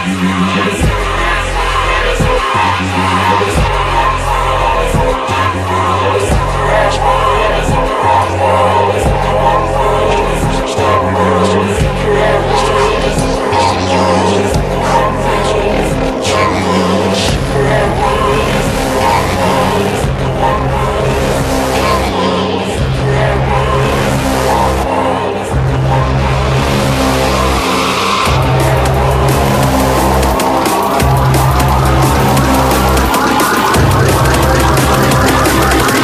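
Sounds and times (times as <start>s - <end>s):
drum and bass music: 0.0s - 36.0s
gritty engine-like synth: 0.0s - 36.0s.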